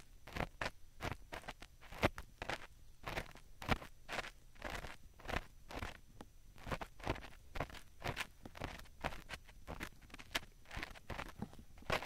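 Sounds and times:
ear pick scraping microphone: 0.0s - 6.0s, 6.6s - 12.0s.

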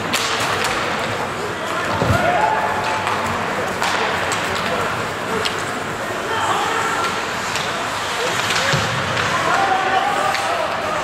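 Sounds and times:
skates scraping ice: 0.0s - 11.0s.

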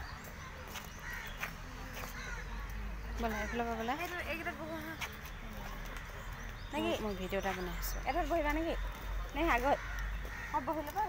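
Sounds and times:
crows cawing: 1.0s - 2.6s, 9.4s - 11.0s.

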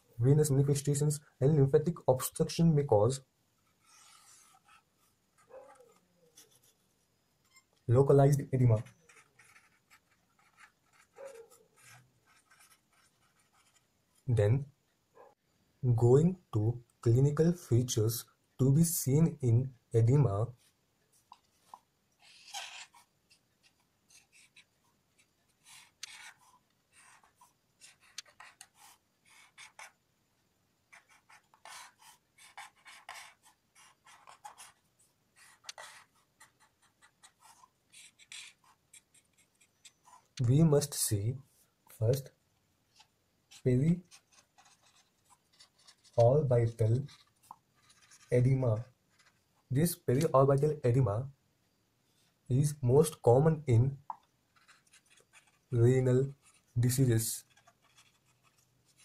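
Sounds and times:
marker scratching on paper: 3.6s - 14.3s, 20.6s - 30.0s, 30.9s - 41.0s, 42.9s - 50.3s, 54.1s - 59.0s.

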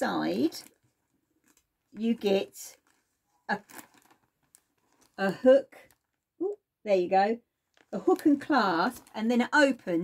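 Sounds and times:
cloth bag rustling: 0.2s - 6.3s, 7.6s - 10.0s.

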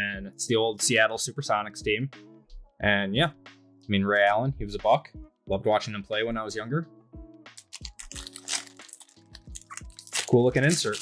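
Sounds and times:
background music with steady beat: 0.0s - 11.0s
card pack wrapper crinkling: 7.6s - 11.0s.

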